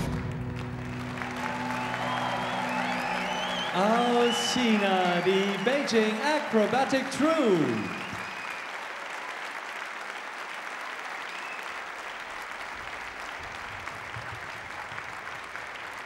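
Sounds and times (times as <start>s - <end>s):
audience applauding: 0.0s - 16.0s.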